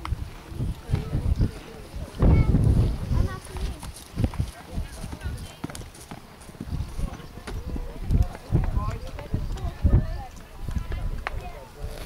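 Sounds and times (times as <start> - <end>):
hooves thudding on turf: 0.0 - 12.0.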